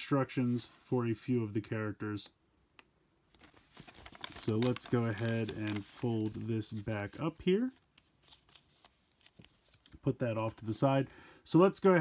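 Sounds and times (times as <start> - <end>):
foil bag rustling: 3.4 - 9.9.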